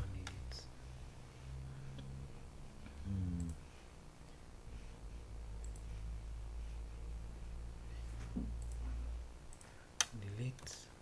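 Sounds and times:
low hum: 0:00.0 - 0:09.4
computer mouse clicking: 0:00.2 - 0:00.5, 0:05.6 - 0:06.0, 0:08.6 - 0:08.8, 0:09.5 - 0:10.8.

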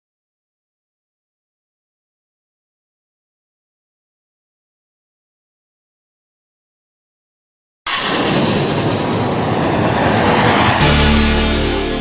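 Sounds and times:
loud rushing whoosh: 0:07.9 - 0:12.0.

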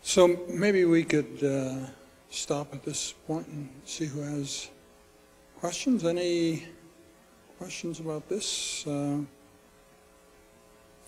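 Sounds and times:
faint electrical hum: 0:00.0 - 0:11.0
man saying uh: 0:00.1 - 0:04.7, 0:07.6 - 0:09.3.

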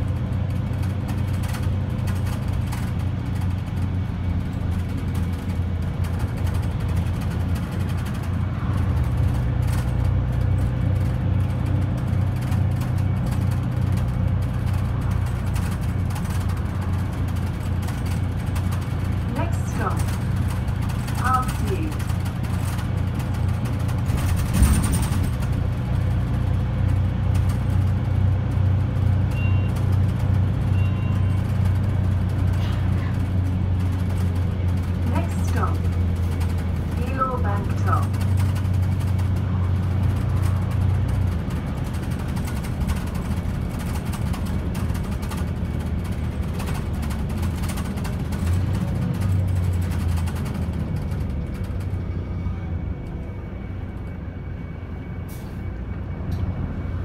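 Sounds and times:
bus diesel engine drone: 0:00.0 - 0:57.0
road and body rattle: 0:00.0 - 0:57.0.

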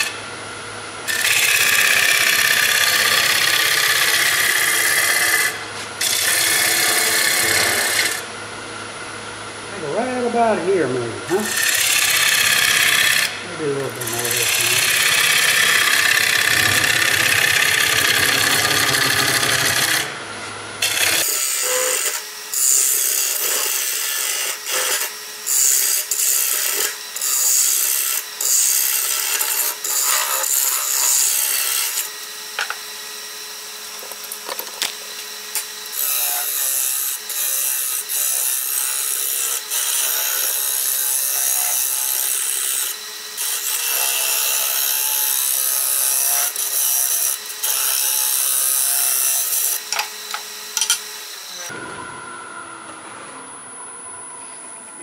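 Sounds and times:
tool cutting wood bowl on lathe: 0:00.0 - 0:00.2, 0:01.0 - 0:08.3, 0:09.8 - 0:20.2, 0:20.8 - 0:51.8
faint lathe hum: 0:00.0 - 0:55.0.

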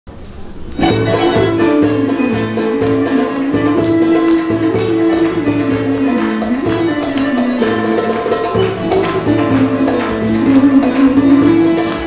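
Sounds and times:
violin and plucked strings ensemble: 0:00.6 - 0:12.0.

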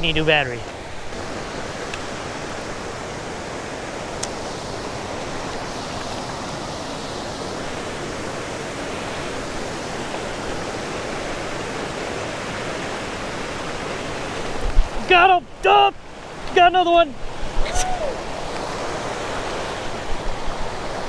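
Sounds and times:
water rushing over rocks: 0:00.0 - 0:21.0.

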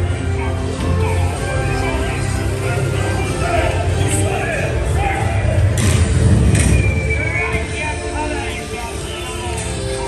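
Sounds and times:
ride music: 0:00.0 - 0:10.0.

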